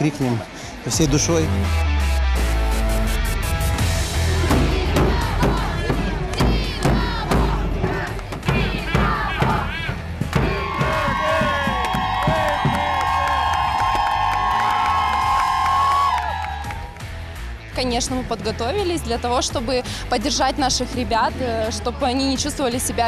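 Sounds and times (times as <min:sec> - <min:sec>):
bass drum beats: 0:01.0 - 0:23.0
crowd chanting and cheering: 0:01.6 - 0:17.6.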